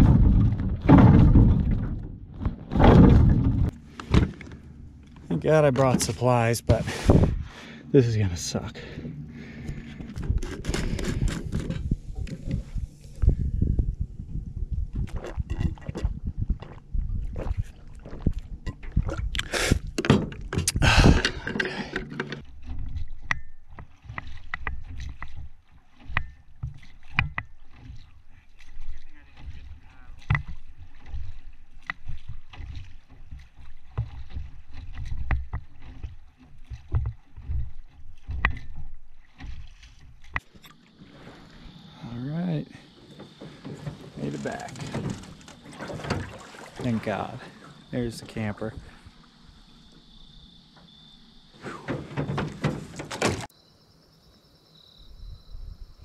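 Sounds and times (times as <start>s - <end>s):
paddle strokes in water: 0.0s - 13.5s, 14.6s - 20.2s, 20.9s - 53.5s
gear clattering in a boat: 0.0s - 13.9s, 14.9s - 41.5s, 42.6s - 51.0s, 51.6s - 53.5s.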